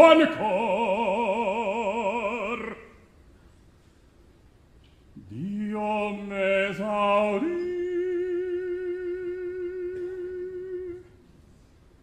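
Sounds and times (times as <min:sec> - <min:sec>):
operatic baritone singing: 0:00.0 - 0:03.0, 0:05.2 - 0:11.1.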